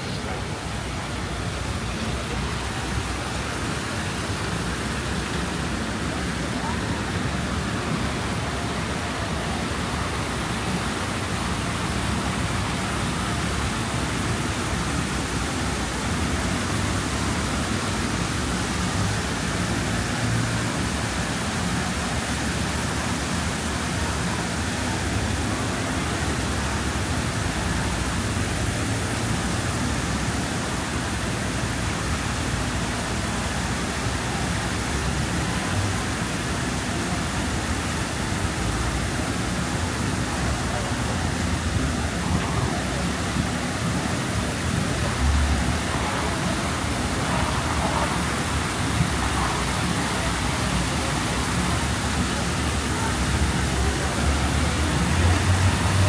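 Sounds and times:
passers-by talking: 32.8s - 56.0s
traffic running: 32.9s - 56.0s.

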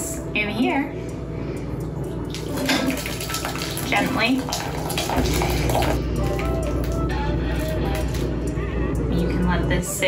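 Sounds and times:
liquid splashing into a strainer: 2.3s - 7.0s.

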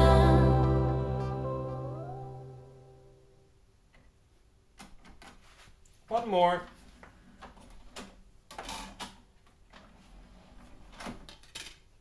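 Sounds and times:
song chord through speaker: 0.0s - 3.4s.

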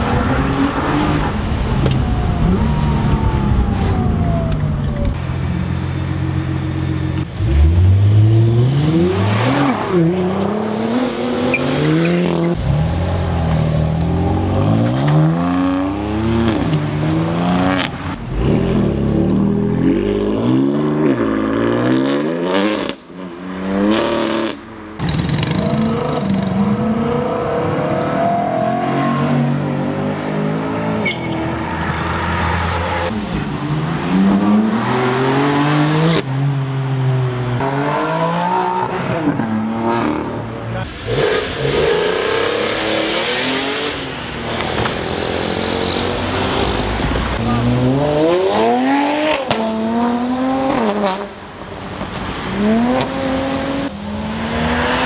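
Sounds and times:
sports car engines accelerating: 0.0s - 55.0s.

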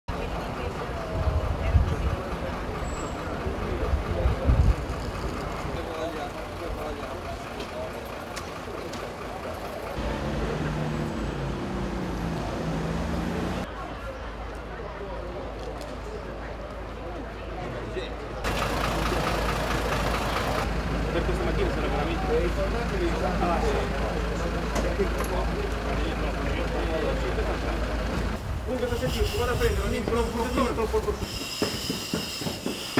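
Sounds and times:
faint indistinct voices: 0.1s - 11.2s, 13.6s - 19.8s
diesel engine idling: 0.1s - 13.7s, 18.4s - 31.2s
low traffic rumble: 0.1s - 32.9s.

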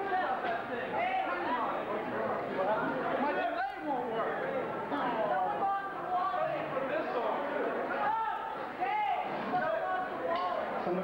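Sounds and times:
crowd chatter in a hall: 0.0s - 11.0s.

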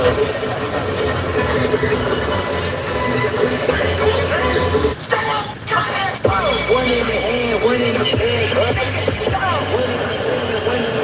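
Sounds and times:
car road and engine noise: 0.0s - 11.0s
indistinct voice: 0.0s - 11.0s.

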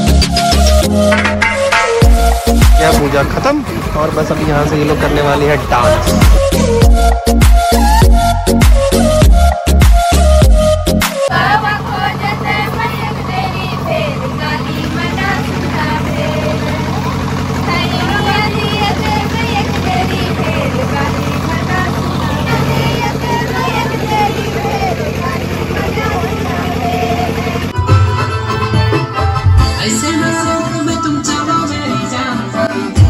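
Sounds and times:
generator humming: 0.0s - 33.0s
women singing together: 11.3s - 27.8s.

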